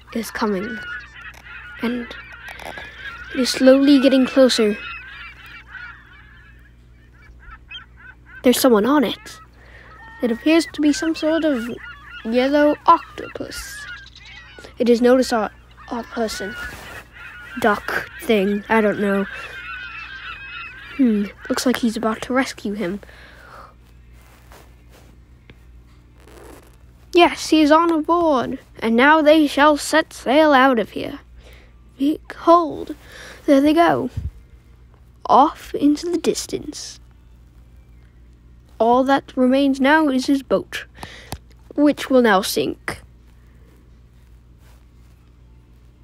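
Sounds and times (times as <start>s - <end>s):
faint rustle: 0.0s - 22.0s, 22.6s - 27.2s, 43.0s - 46.0s
steady low hum: 0.0s - 46.0s.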